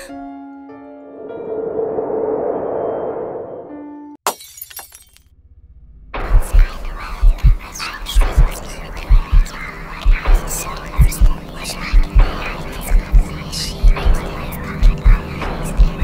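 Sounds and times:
heartbeat thumps: 6.2s - 16.0s
steady low hum: 6.2s - 16.0s.

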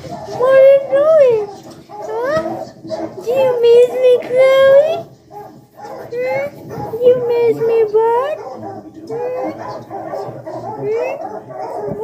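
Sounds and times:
dog whining and crying: 0.0s - 5.1s, 5.8s - 12.0s.

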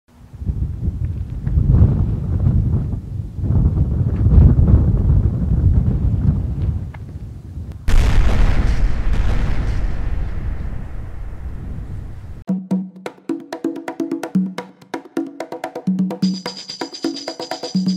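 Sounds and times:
deep rumbling: 7.8s - 12.4s
loud boom: 7.9s - 12.4s.

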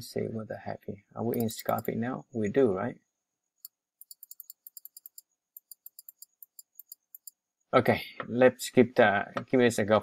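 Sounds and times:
computer mouse clicking: 1.4s - 1.9s, 3.6s - 7.4s.

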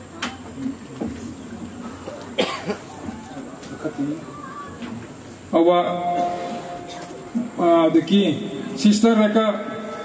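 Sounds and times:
person coughing: 2.4s - 2.8s.

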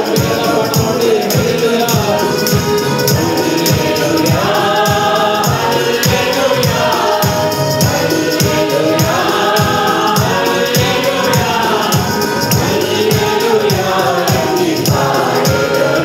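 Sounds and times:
instrumental accompaniment: 0.0s - 16.0s
mixed choir singing a hymn: 0.0s - 16.0s
steady percussion beat: 0.0s - 16.0s.

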